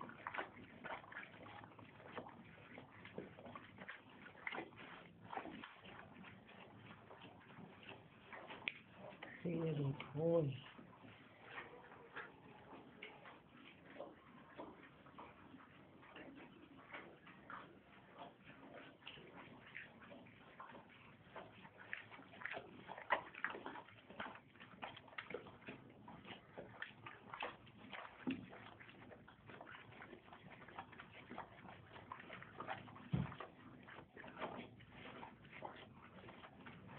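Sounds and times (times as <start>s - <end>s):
horse chewing and lip smacking: 0.0s - 36.9s.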